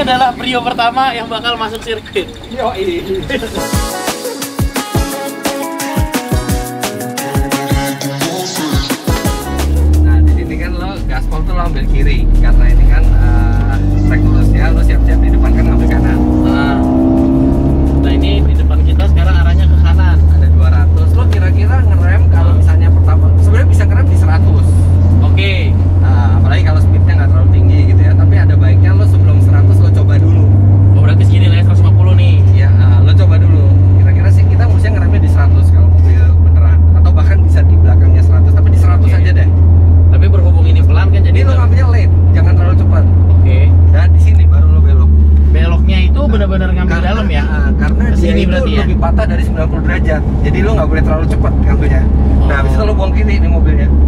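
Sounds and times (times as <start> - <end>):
car engine drone: 0.0 - 3.7, 9.2 - 54.0
road noise: 0.0 - 4.0, 9.4 - 54.0.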